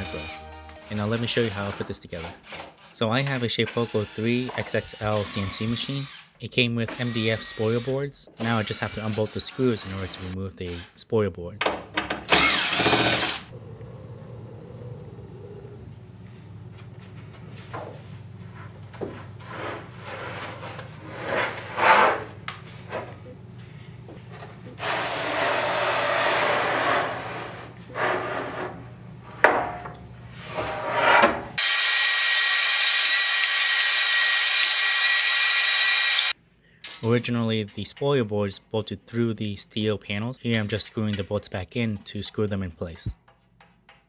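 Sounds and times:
cordless driver running: 0:12.3 - 0:13.5, 0:31.6 - 0:36.4
low steady hum: 0:13.5 - 0:21.0
board scraping across metal table: 0:19.3 - 0:22.4, 0:24.8 - 0:29.4, 0:30.3 - 0:31.5.

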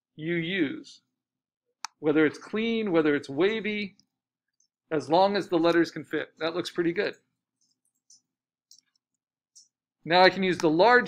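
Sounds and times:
person speaking: 0:01.9 - 0:04.2, 0:04.8 - 0:11.0
computer mouse clicks: 0:07.5 - 0:09.8.

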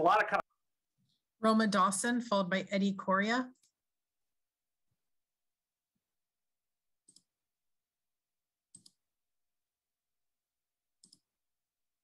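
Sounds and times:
computer mouse clicks: 0:07.0 - 0:07.3, 0:08.7 - 0:09.0, 0:11.0 - 0:11.3.

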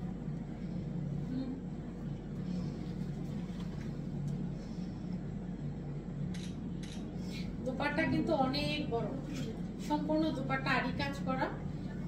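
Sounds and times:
low background rumble and hum: 0:00.0 - 0:12.0.

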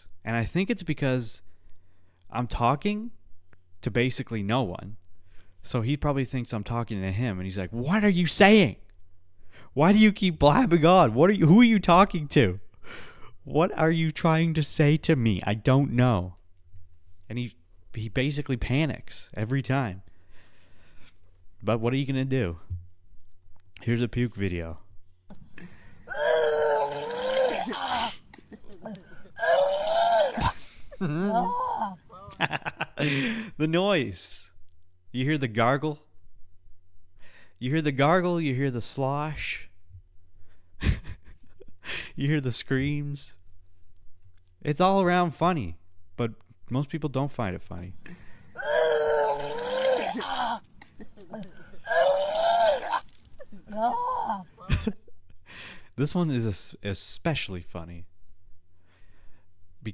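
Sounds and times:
rush of vomit: 0:26.1 - 0:28.2, 0:48.6 - 0:50.6
person retching and vomiting: 0:26.1 - 0:32.3, 0:48.6 - 0:54.7.

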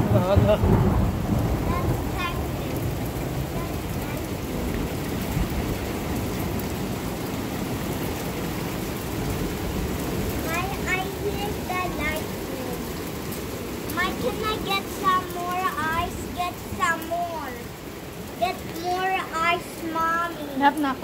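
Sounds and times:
hail and rain on wood: 0:00.0 - 0:21.0.

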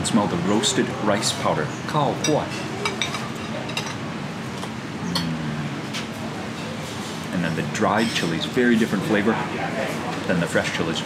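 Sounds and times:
cutlery clinking on plates: 0:02.2 - 0:04.0
person humming: 0:05.0 - 0:05.8.

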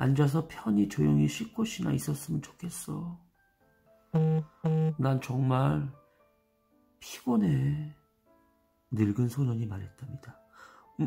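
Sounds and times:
faint soft background music: 0:00.0 - 0:11.0.

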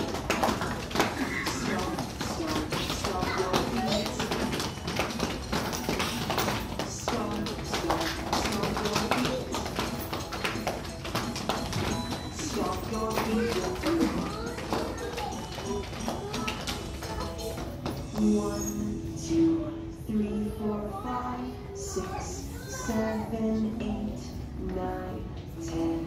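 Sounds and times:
children stomping feet on floor: 0:00.0 - 0:18.2
children's counting song: 0:00.0 - 0:26.0.

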